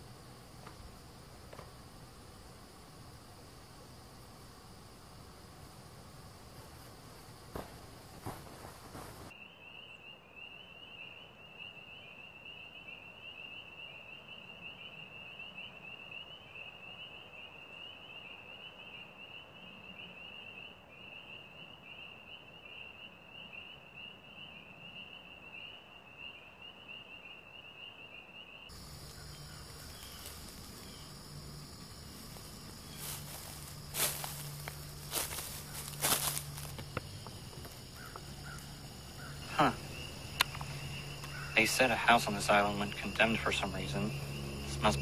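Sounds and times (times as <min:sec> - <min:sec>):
insect trilling: 0:24.9 - 0:45.0.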